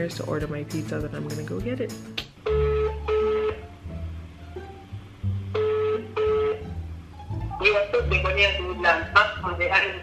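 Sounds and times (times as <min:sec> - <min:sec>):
background music: 0:00.0 - 0:10.0
telephone ringback tone: 0:02.4 - 0:03.7, 0:05.6 - 0:06.7.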